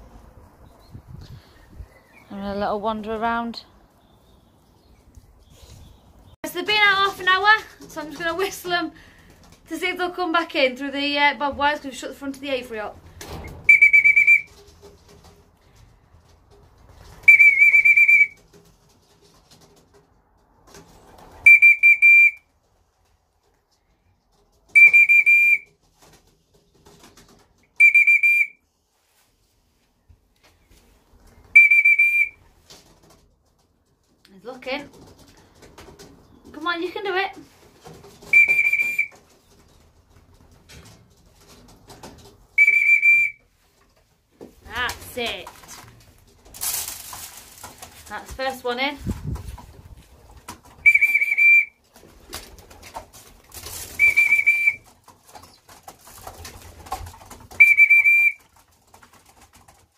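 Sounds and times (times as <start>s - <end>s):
whistle blasts: 13.6s - 14.5s, 17.2s - 18.4s, 21.5s - 22.4s, 24.8s - 25.7s, 27.8s - 28.6s, 31.5s - 32.4s, 38.3s - 39.2s, 42.6s - 43.4s, 50.8s - 51.8s, 54.0s - 54.8s, 57.6s - 58.4s.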